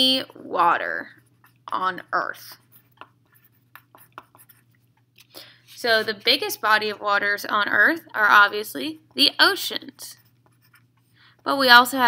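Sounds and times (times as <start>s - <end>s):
pencil writing on paper: 2.5s - 4.8s, 10.0s - 11.5s.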